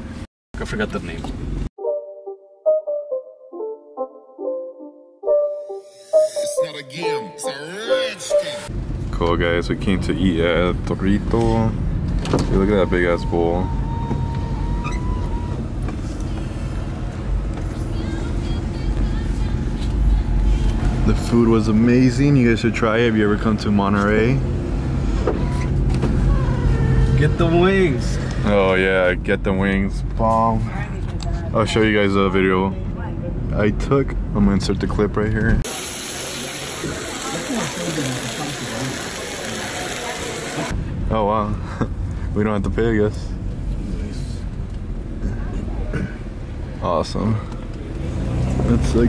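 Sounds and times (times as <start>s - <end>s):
car interior rumble: 8.7s - 32.1s
indistinct voices of diners: 36.2s - 40.8s.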